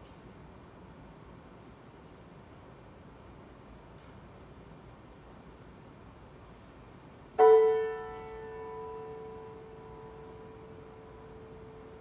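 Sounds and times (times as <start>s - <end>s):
piano chord ringing: 7.4s - 12.0s.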